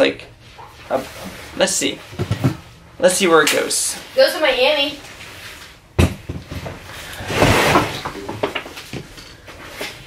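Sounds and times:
objects knocking on a desk: 2.2 - 2.6
rustling: 6.5 - 10.0.

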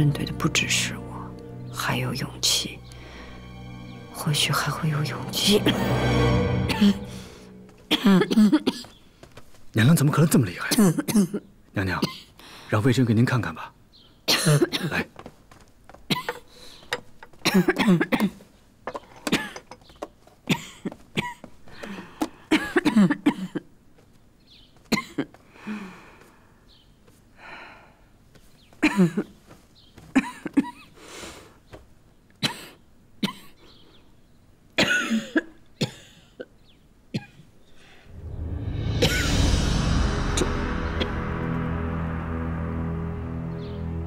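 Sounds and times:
woman coughing harshly: 6.6 - 7.1, 7.8 - 8.9, 14.3 - 15.1, 16.1 - 16.5, 17.4 - 18.4, 19.2 - 19.7, 20.5 - 21.5, 22.5 - 23.7, 24.9 - 25.4, 28.8 - 29.3, 30.1 - 31.0, 32.4 - 33.6, 34.8 - 36.5, 37.1 - 37.4, 39.0 - 39.3.

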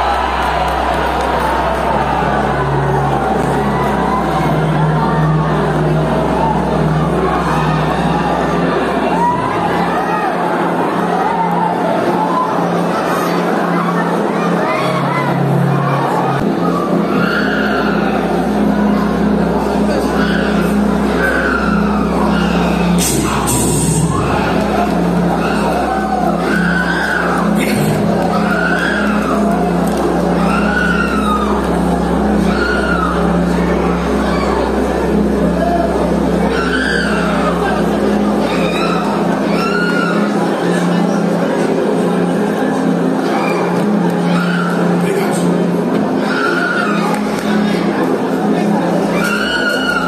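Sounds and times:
congregation noise: 0.0 - 50.0
crowd clamour: 0.0 - 50.0
keyboard drone: 0.0 - 50.0
wailing cry: 14.4 - 41.0, 42.8 - 45.1, 46.1 - 47.7, 49.0 - 50.0.

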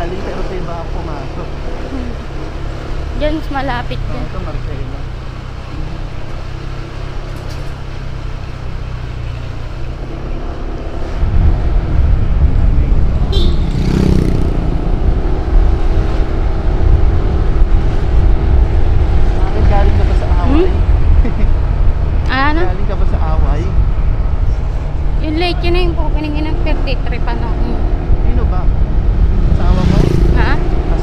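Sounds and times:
motorcycle riding: 0.0 - 31.0
wind noise on microphone: 11.1 - 26.4, 27.0 - 31.0.

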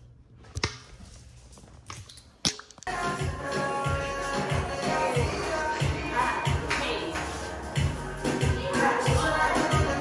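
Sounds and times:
music with a beat: 2.9 - 10.0.

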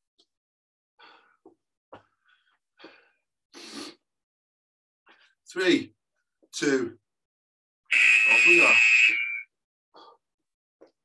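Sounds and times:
high-pitched timer buzzer: 7.9 - 9.4.

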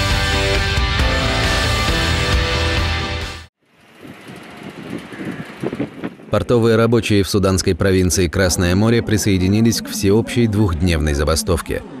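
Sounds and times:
working harbour background noise: 3.6 - 12.0
wind on microphone: 3.9 - 6.5.

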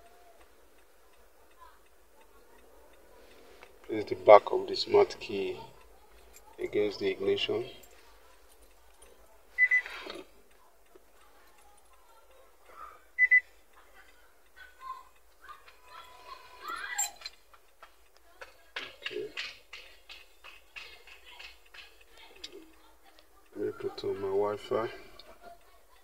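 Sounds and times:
double electronic beeps: 9.6 - 9.9, 13.2 - 13.5.

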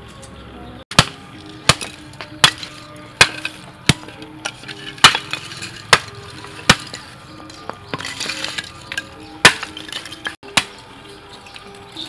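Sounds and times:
faint background music: 0.0 - 12.0
hammer cracking charcoal: 0.9 - 12.0.

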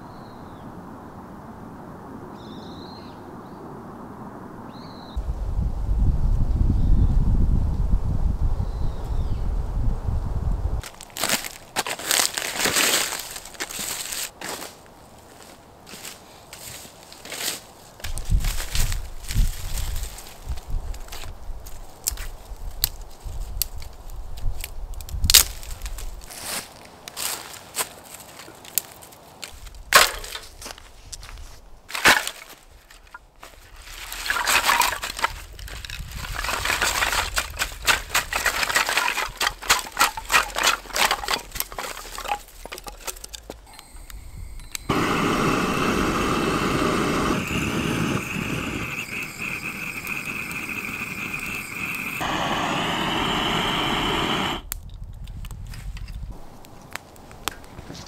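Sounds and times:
twigs snapping: 10.8 - 14.7, 20.9 - 43.7, 54.7 - 58.0
crunching in dry leaves: 10.8 - 44.0
firewood tipped onto ground: 29.9 - 30.8, 31.9 - 43.6
steady hiss: 43.6 - 54.7.

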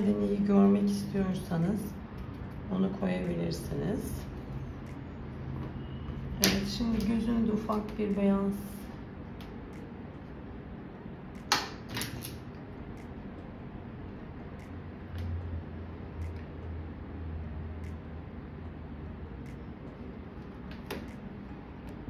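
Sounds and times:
low hum: 12.4 - 22.0.

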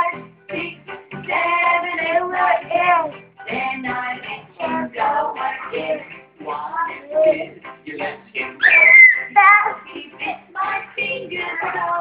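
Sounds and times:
music with singing voices: 0.0 - 12.0.

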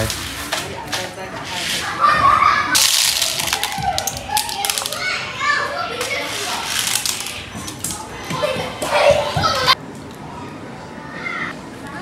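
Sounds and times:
children's voices at play: 1.8 - 12.0
beads rattling through plastic toys: 2.8 - 5.2, 6.2 - 8.0
plastic toys clattering: 2.8 - 5.2, 6.0 - 8.1.

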